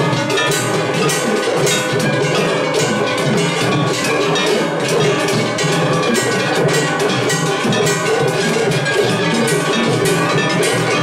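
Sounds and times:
clanging hand gongs: 0.0s - 11.0s
taiko drums: 0.0s - 11.0s.

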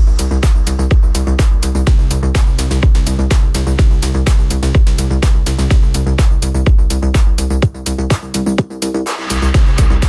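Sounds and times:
hi-hats: 0.0s - 10.0s
kick drum: 0.0s - 10.0s
techno music: 0.0s - 10.0s.

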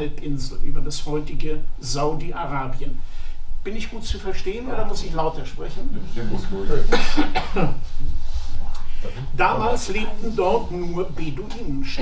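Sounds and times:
person coughing: 6.8s - 7.8s.

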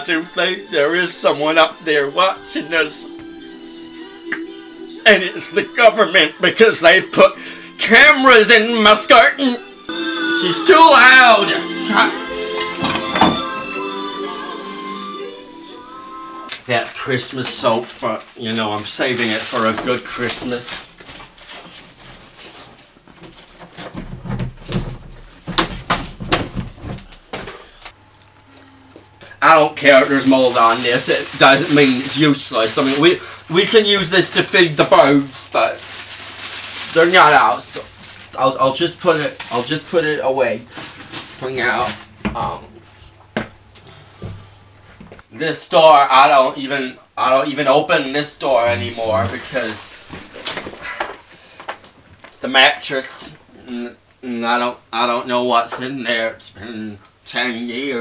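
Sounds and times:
cloth bags rustling: 17.4s - 27.3s, 29.8s - 42.2s
items handled in a cupboard: 17.7s - 27.6s.

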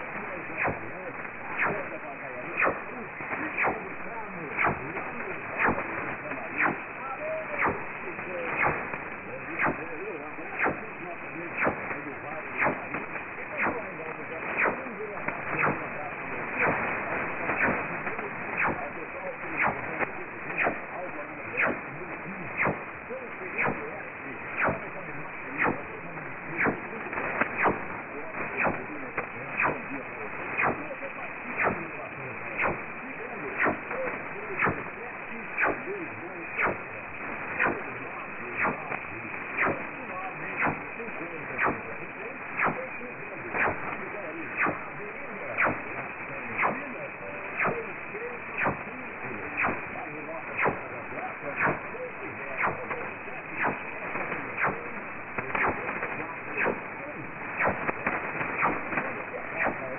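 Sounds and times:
faint radio voice: 0.0s - 59.9s
radio hiss: 0.0s - 59.9s
static clicks: 0.0s - 59.9s.

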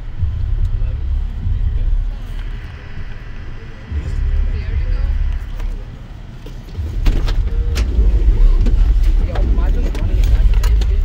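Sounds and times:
van engine rumble inside cabin: 0.0s - 11.0s.

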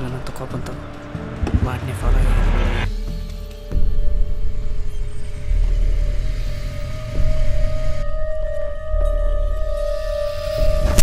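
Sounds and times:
deep pulsing low rumble: 0.0s - 3.0s.

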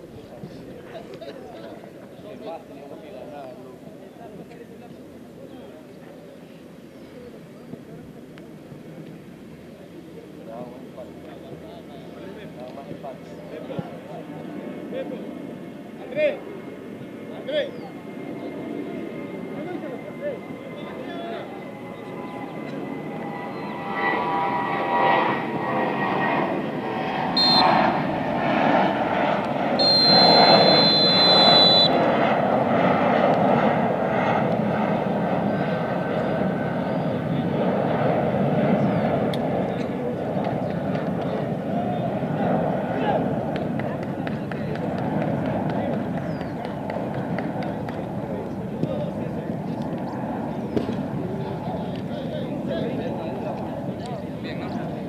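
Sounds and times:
crowd voices: 0.0s - 55.0s
referee's whistle blasts: 27.4s - 27.9s, 29.8s - 32.0s.

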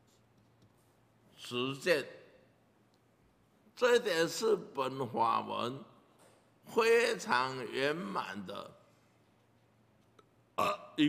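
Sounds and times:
man talking: 1.4s - 2.3s, 3.7s - 6.0s, 6.6s - 8.8s.

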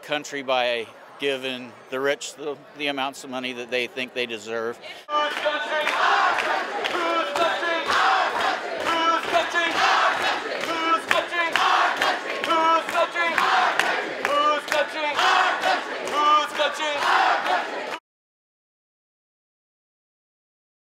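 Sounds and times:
crowd chanting and shouting: 4.5s - 18.0s.

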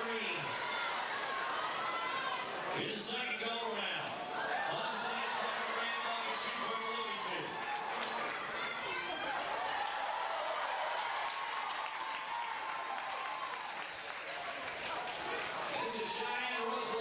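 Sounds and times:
crowd clapping and cheering: 0.0s - 2.7s, 4.5s - 17.0s.

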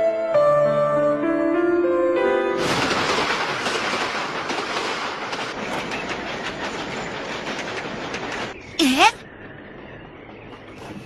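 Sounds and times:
train wheels clacking on rails: 2.6s - 11.0s.

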